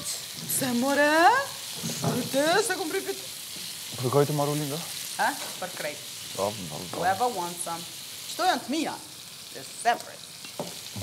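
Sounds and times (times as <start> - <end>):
food sizzling in a frying pan: 0.0 - 11.0.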